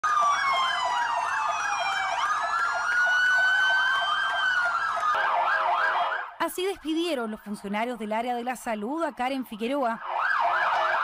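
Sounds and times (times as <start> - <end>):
ambulance sirens wailing: 0.0 - 6.4, 9.2 - 11.0
steady low siren tone: 0.0 - 6.4.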